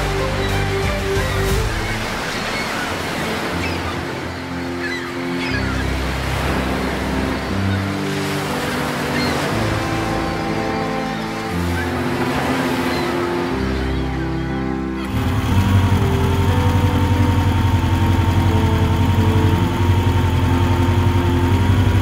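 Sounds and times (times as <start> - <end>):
background music with low notes: 0.0 - 22.0
ocean surf breaking: 0.0 - 22.0.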